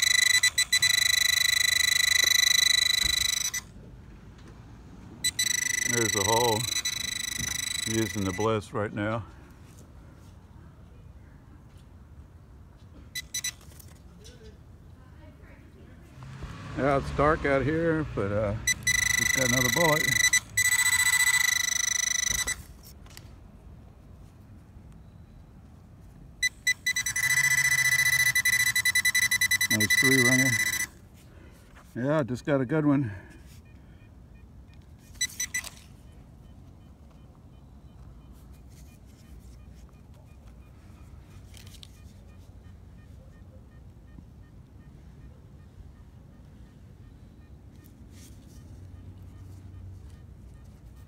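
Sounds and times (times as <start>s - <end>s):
pinpointer high-pitched buzzing: 0.0s - 3.7s, 5.2s - 8.5s, 18.7s - 22.6s, 26.4s - 30.9s
short beeps: 0.0s - 3.7s, 5.2s - 8.6s, 13.2s - 14.0s, 18.7s - 22.7s, 26.4s - 31.0s, 33.1s - 41.1s, 41.9s - 51.0s
steady high electronic tone: 5.2s - 8.5s, 18.7s - 22.6s, 26.4s - 30.9s.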